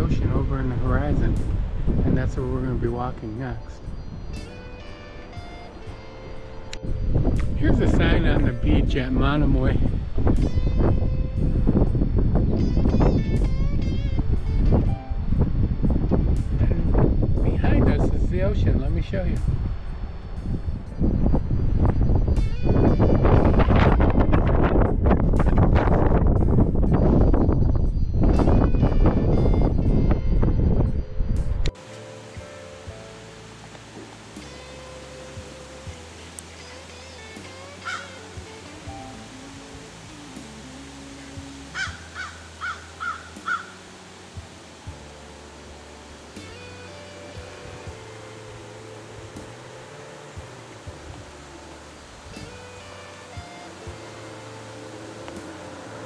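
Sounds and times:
wind buffeting microphone: 0.0s - 4.6s, 5.8s - 31.8s
soft background music: 0.0s - 56.0s
ocean surf: 31.8s - 56.0s
short bird calls: 37.8s - 38.2s.

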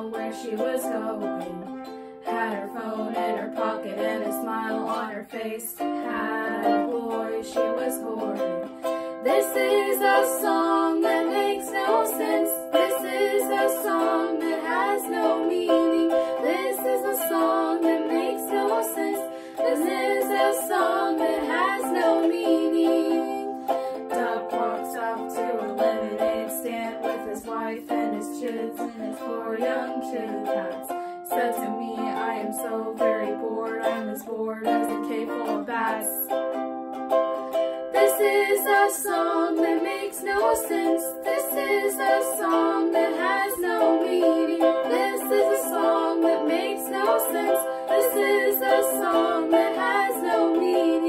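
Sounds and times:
young woman singing: 0.0s - 36.4s, 38.0s - 51.0s
instrumental accompaniment: 0.0s - 51.0s.

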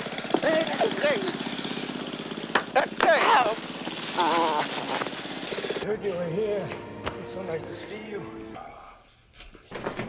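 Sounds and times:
men's wordless exclamations: 2.7s - 3.6s.

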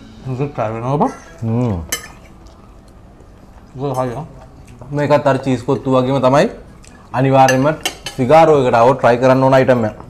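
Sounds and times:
cutlery clicking on plates: 7.5s - 8.3s.

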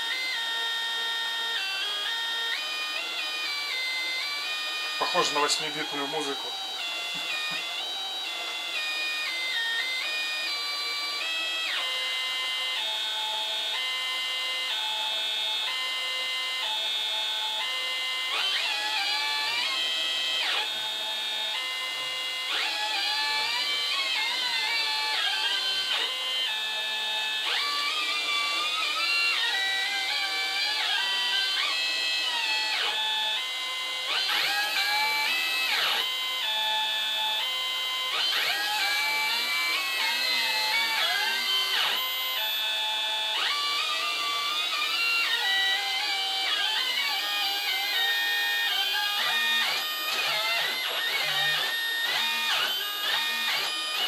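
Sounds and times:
stepper motors playing a melody: 0.0s - 54.0s.

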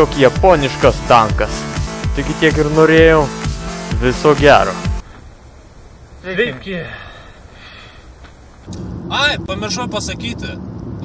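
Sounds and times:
car engine and road noise: 0.0s - 11.0s
low outdoor rumble: 5.0s - 11.0s.

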